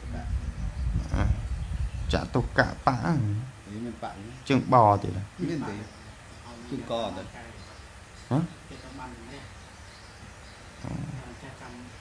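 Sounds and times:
faint man's voice: 0.0 - 1.5, 2.1 - 7.7, 8.3 - 9.5, 10.8 - 12.0.

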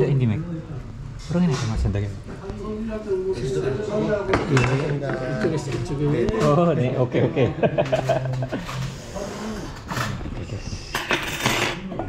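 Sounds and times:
tableware clattering: 4.2 - 5.7, 10.9 - 12.0
dishes and cutlery clinking: 4.3 - 6.6, 10.9 - 12.0.

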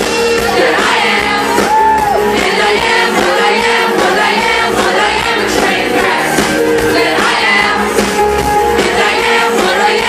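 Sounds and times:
live band music over speakers: 0.0 - 10.0
crowd singing along: 0.3 - 10.0.

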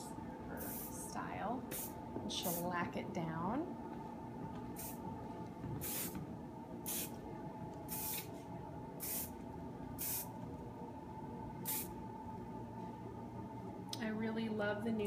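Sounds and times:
aerosol hairspray hissing: 0.6 - 0.9, 5.8 - 6.1, 7.9 - 8.3, 9.0 - 9.3, 11.7 - 11.9.

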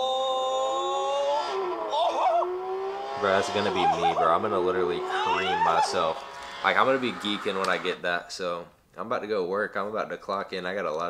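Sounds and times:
car engine revving: 0.8 - 8.1.

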